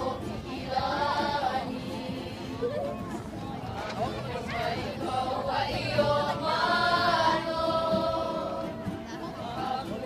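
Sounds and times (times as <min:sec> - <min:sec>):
crowd singing in unison: 0:00.0 - 0:10.0.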